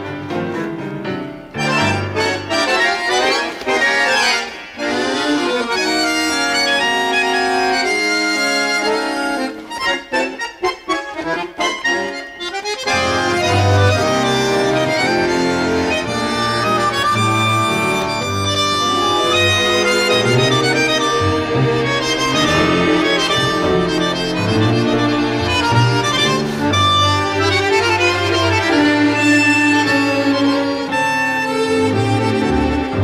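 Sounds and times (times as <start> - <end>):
instrumental tango with bandoneon: 0.0 - 33.0.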